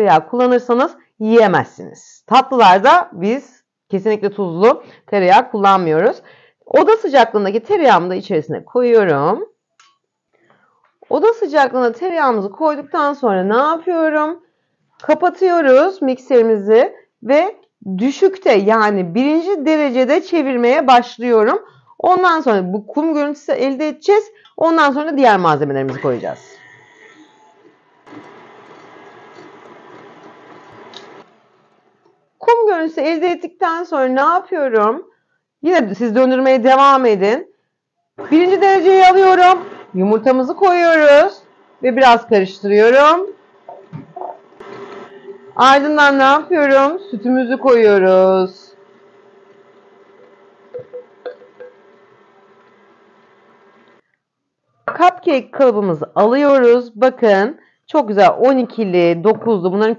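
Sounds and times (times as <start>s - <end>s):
stand mixer motor hum: 27.2s - 32.0s, 39.5s - 40.0s, 41.0s - 45.8s, 48.2s - 54.0s.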